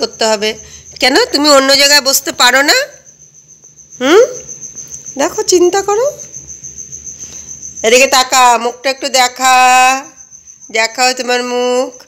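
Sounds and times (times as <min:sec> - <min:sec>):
cricket trilling: 0:00.0 - 0:12.0.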